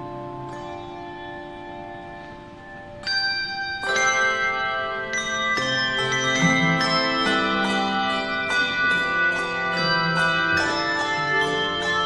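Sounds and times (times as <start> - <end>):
handbells ringing chords: 0.0 - 12.0.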